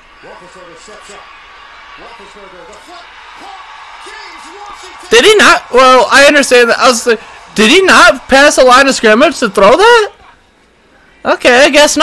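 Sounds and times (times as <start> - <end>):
stadium crowd noise: 0.0 - 12.0
television sports commentary: 0.0 - 12.0.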